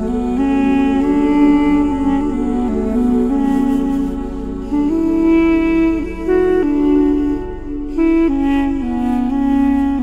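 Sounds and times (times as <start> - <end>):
duduk playing slow melody: 0.0 - 10.0
low drone: 0.0 - 10.0.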